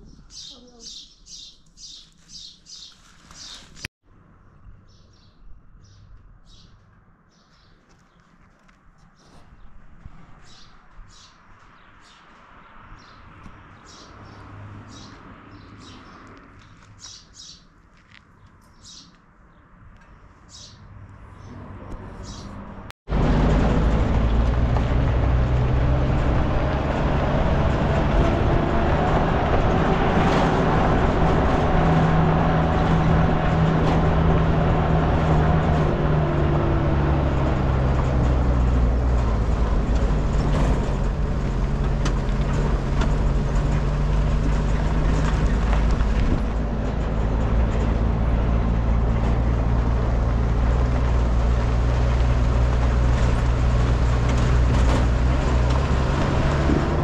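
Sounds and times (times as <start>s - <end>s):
road and wind noise: 0.0s - 57.0s
vehicle engine running: 21.6s - 57.0s.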